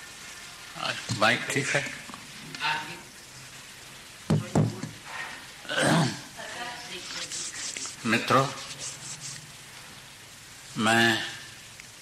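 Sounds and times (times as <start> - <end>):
recording hiss and crackle: 0.0 - 12.0.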